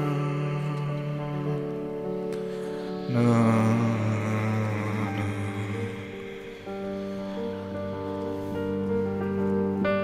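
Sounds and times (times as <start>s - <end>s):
solo piano: 0.0s - 10.0s.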